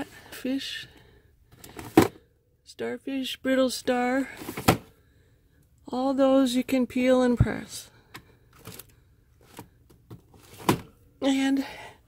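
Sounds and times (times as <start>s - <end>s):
plastic drawer sliding open: 9.5s - 11.0s.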